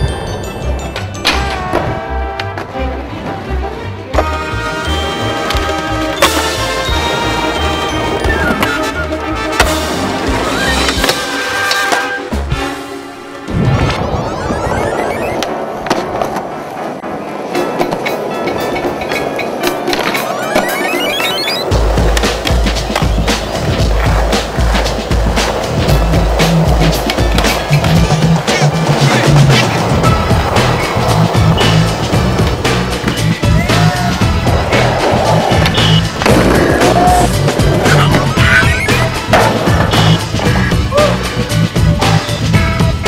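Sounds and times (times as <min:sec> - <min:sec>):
skateboard wheels rolling: 0:00.0 - 0:43.0
skateboard scraping on concrete: 0:00.8 - 0:13.5, 0:15.0 - 0:43.0
background music with beat: 0:19.6 - 0:43.0
skateboard clacks on concrete: 0:21.8 - 0:38.3.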